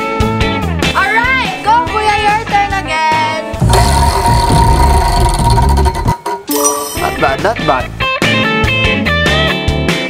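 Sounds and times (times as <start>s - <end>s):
prize wheel ticking: 4.9s - 7.4s.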